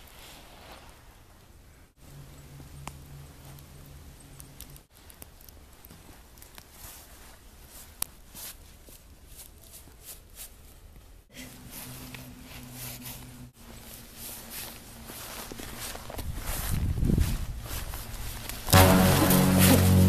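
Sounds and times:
footsteps crunching in snow: 0:11.6 - 0:20.0
loud music: 0:18.7 - 0:20.0
low held music tone: 0:18.7 - 0:20.0.

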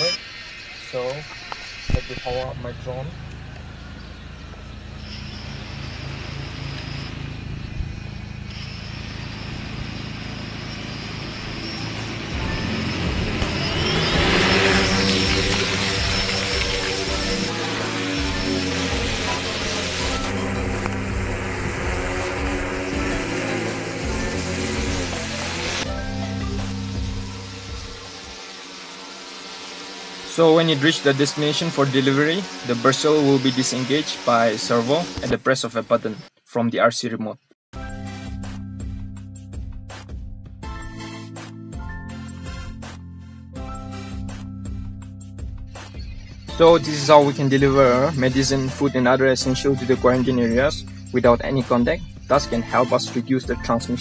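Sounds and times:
quadcopter motors whining: 0:00.0 - 0:36.3, 0:40.6 - 0:43.0, 0:43.6 - 0:54.0
background music: 0:11.6 - 0:28.6, 0:37.8 - 0:54.0.

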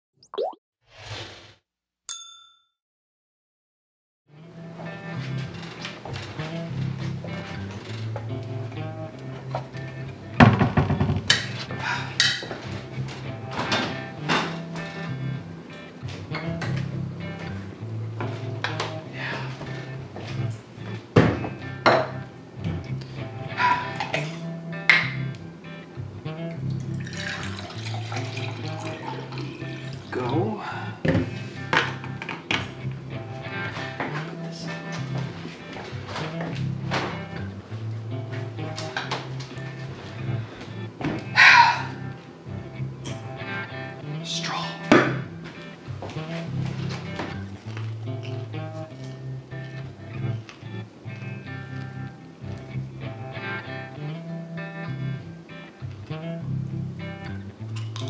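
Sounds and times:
short rising bloop: 0:00.2 - 0:01.3
bright bell-like ding: 0:02.1 - 0:02.7
background music: 0:04.4 - 0:58.0
drink pouring into cup: 0:26.9 - 0:30.2.

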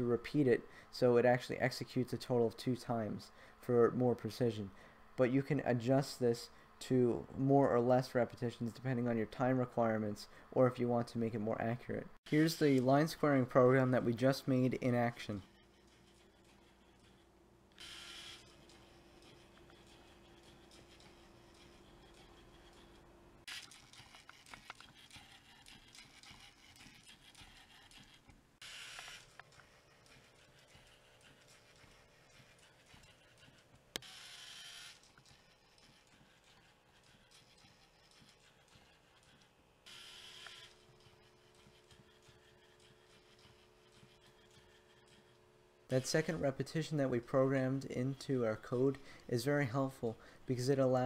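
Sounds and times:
faint robot motor whirs: 0:11.3 - 0:46.9.

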